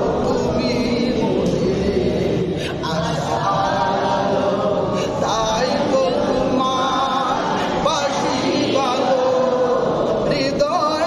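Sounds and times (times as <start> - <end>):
man singing devotional song: 0.0 - 11.0.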